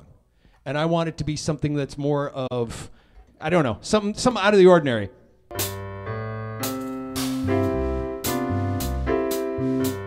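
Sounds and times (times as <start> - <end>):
piano chords: 5.5 - 10.0.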